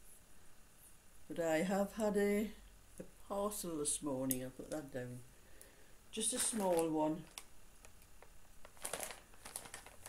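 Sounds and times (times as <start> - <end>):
plastic bag crinkling: 6.2 - 7.5, 8.2 - 10.0.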